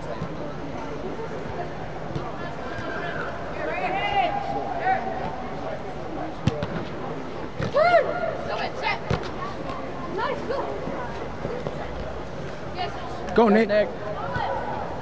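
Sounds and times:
soccer ball being kicked: 6.4 - 6.8.

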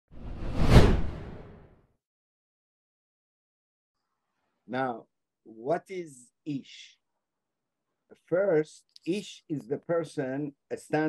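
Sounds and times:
whoosh: 0.1 - 1.7.

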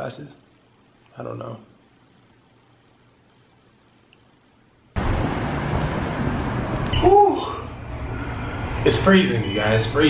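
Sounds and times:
loud low rumbling: 5.0 - 9.6.

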